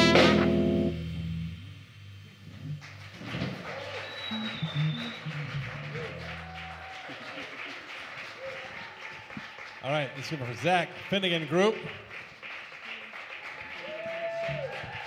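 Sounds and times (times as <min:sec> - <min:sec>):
jazz band low note ringing: 0:00.0 - 0:03.0
audience clapping and cheering: 0:02.7 - 0:15.0.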